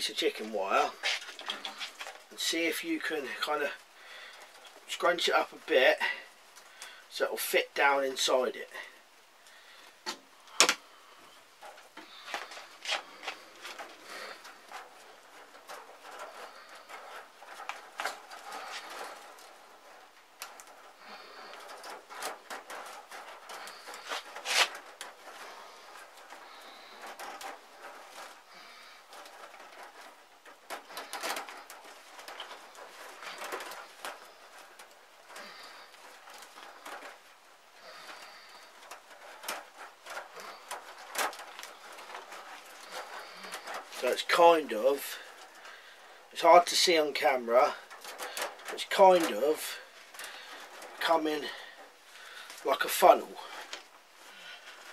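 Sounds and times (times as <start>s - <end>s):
chicken wire being scrunched: 12.2s - 44.6s.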